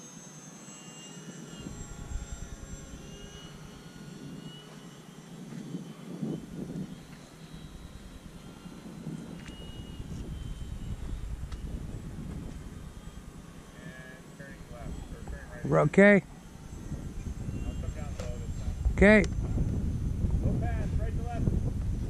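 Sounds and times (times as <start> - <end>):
model plane motors whining: 0.0 - 22.0.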